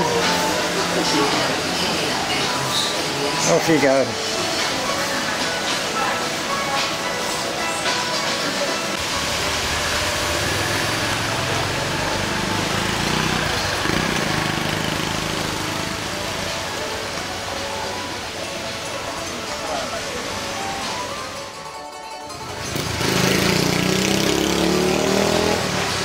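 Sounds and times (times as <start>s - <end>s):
background music: 0.0s - 26.0s
faint voices: 15.5s - 22.0s
vehicle engine rumble passing: 22.4s - 26.0s.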